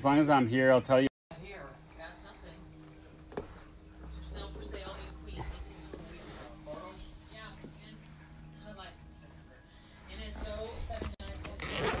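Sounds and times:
fabric rustling: 2.1s - 8.4s, 9.9s - 12.0s
zipper being pulled open: 10.9s - 12.0s.

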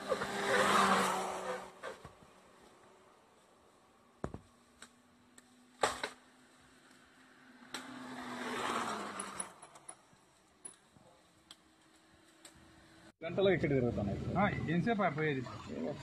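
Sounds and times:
vehicle passing: 0.0s - 4.1s, 6.2s - 10.0s, 12.1s - 16.0s.

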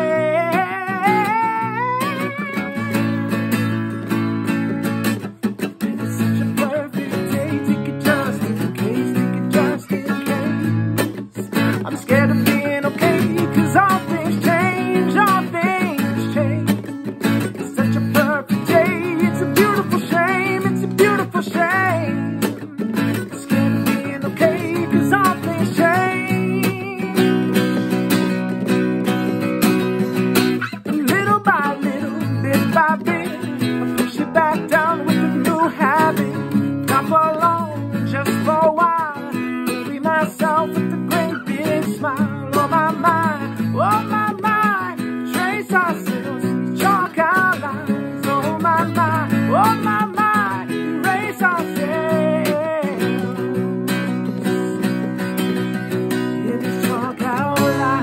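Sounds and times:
man singing: 0.0s - 4.3s, 5.8s - 29.5s, 30.1s - 58.0s
strummed acoustic guitar: 0.0s - 58.0s.

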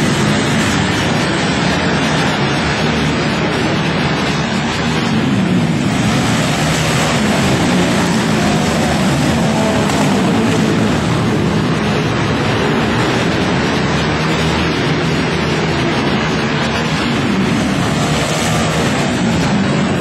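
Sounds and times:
racing motorcycle engines: 0.0s - 20.0s.

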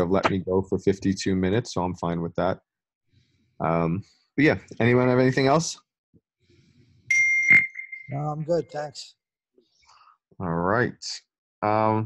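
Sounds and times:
electronic chime ding: 7.1s - 8.4s.

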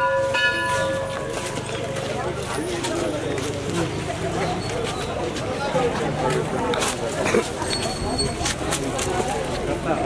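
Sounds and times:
metal bell ringing: 0.0s - 1.2s.

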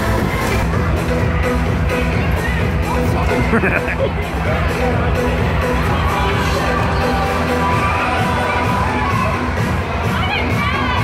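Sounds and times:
background music: 0.0s - 11.0s
children shouting and screaming: 7.3s - 11.0s.

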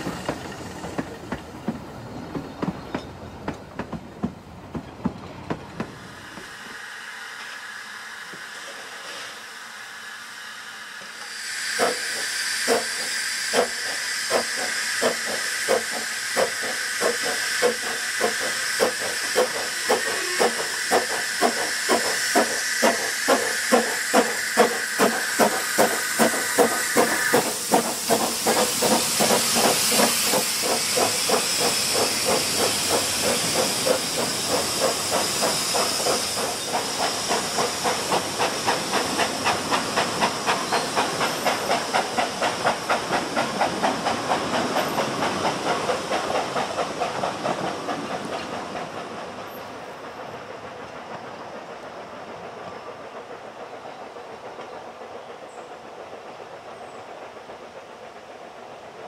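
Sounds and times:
steam hissing: 0.0s - 4.3s, 5.7s - 59.0s
steam locomotive chuffing: 0.0s - 59.0s.

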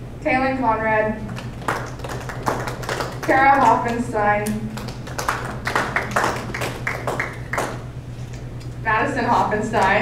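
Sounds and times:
steady low hum: 0.0s - 10.0s
audience clapping: 1.3s - 7.9s.

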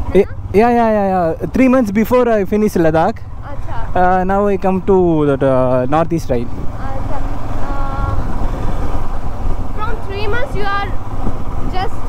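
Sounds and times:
motorcycle engine rumble: 0.0s - 12.0s
wind noise: 5.8s - 12.0s.

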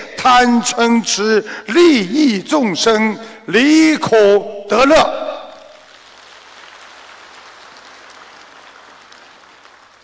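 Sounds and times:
large audience applauding: 5.8s - 10.0s.

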